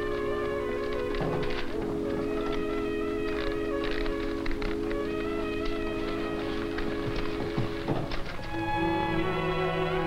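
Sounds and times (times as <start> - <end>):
typewriter keys clacking: 0.0 - 8.6
orchestral film music: 0.0 - 10.0.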